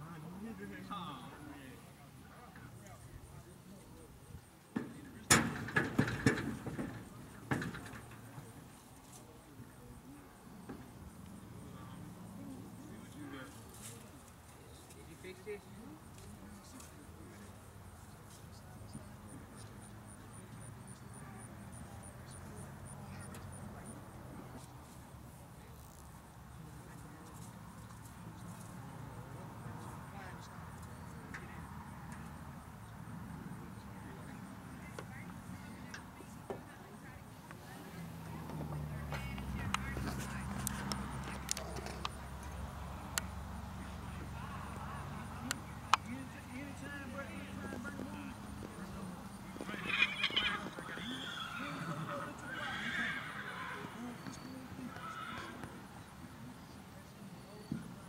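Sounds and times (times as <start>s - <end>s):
hooves knocking on trailer floor: 4.7s - 8.5s
horse whinnying: 49.5s - 55.7s.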